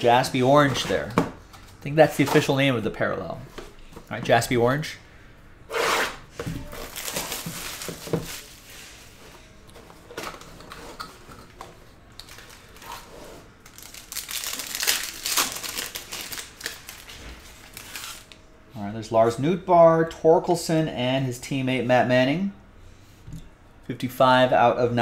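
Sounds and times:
plastic wrapping crinkling and tearing: 6.6s - 8.7s, 12.2s - 18.4s.

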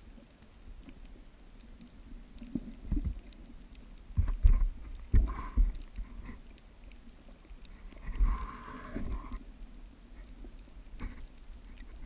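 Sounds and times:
muffled underwater thumps: 4.1s - 5.8s.

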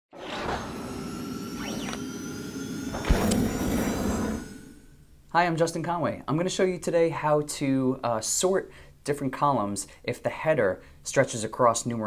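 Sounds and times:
rushing whoosh: 0.1s - 5.0s
sharp deep hit: 2.8s - 5.0s.

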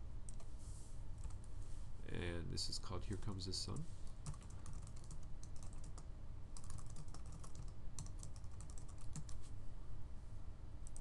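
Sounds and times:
low steady hum: 0.0s - 11.0s
keyboard typing: 1.2s - 1.4s, 4.2s - 6.0s, 6.6s - 9.5s.

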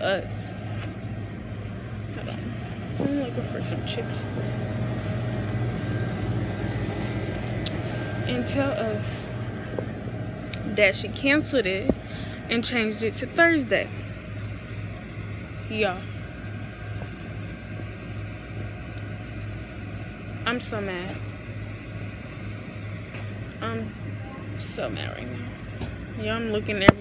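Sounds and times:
faint steady tones: 0.0s - 27.0s
steady low hum: 0.0s - 27.0s.

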